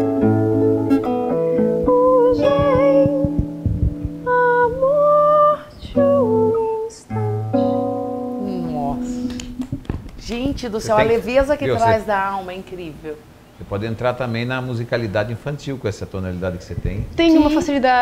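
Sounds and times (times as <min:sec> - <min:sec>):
classical guitar: 0:00.0 - 0:04.8, 0:05.9 - 0:09.9
woman singing: 0:01.6 - 0:07.8.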